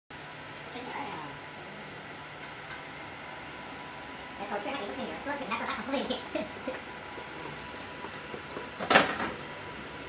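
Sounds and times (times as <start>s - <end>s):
machine fan hum and hiss: 0.1s - 10.0s.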